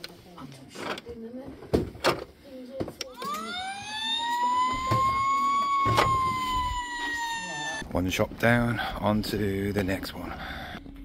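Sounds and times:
toy siren wailing: 3.2 - 7.8.

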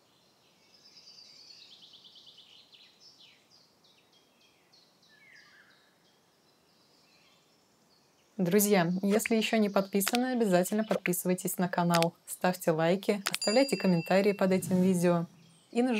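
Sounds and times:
faint birdsong trills and chirps: 0.0 - 15.9.

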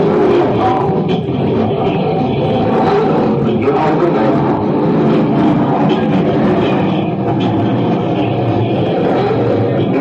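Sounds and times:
distorted electronic noise: 0.0 - 10.0.

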